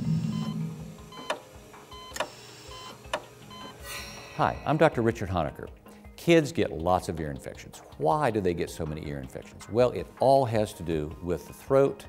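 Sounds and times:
short electronic beeps: 0.1s - 1.4s.

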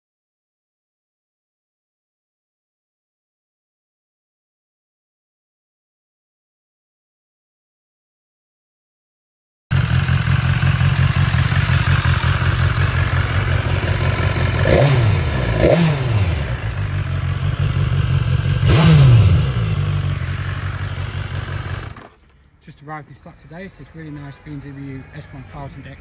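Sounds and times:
motorcycle engine idling and revving: 9.7s - 22.4s, 23.3s - 26.0s.

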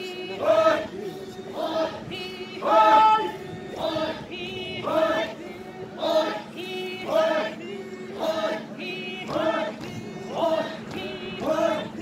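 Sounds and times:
group chanting in unison: 0.0s - 12.0s.

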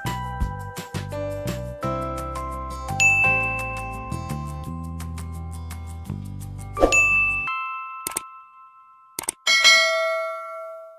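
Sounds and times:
background music: 0.0s - 8.2s
bright bell ding: 3.0s - 4.1s, 6.9s - 10.9s
ringing chime: 3.0s - 4.5s, 6.9s - 10.9s
sharp clicks: 9.2s - 9.4s.

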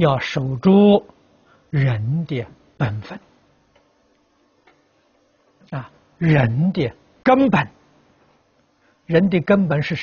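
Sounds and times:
person speaking: 0.0s - 3.4s, 5.6s - 7.8s.

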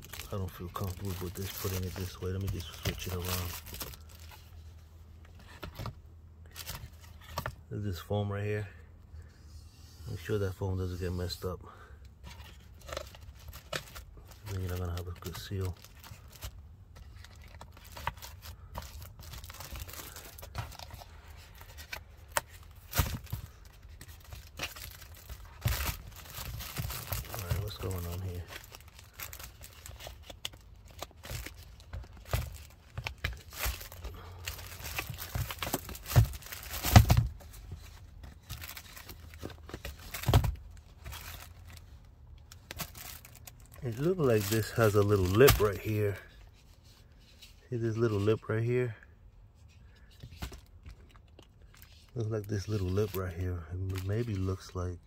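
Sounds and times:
plastic crinkling: 0.0s - 4.5s, 12.7s - 46.2s.

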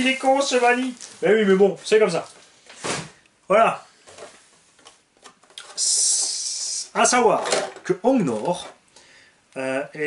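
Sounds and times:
loud steady hiss: 5.6s - 7.2s.

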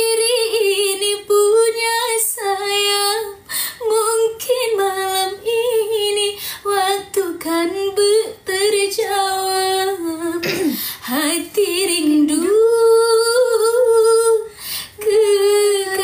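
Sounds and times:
woman singing a slow ballad: 0.0s - 16.0s.

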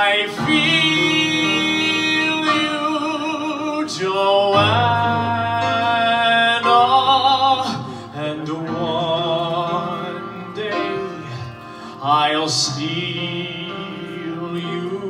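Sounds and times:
instrumental accompaniment: 0.0s - 15.0s
man singing slow ballad: 0.0s - 15.0s.

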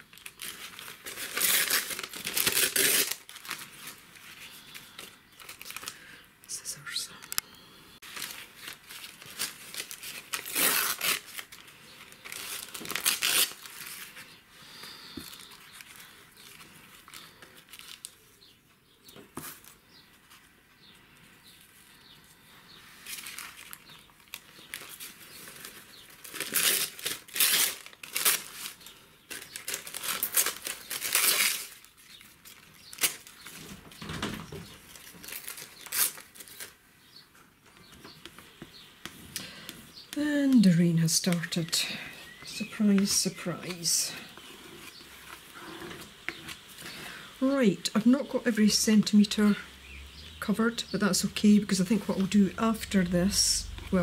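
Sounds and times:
paper rustling and crinkling: 0.0s - 6.1s, 8.0s - 20.5s, 21.6s - 39.3s.

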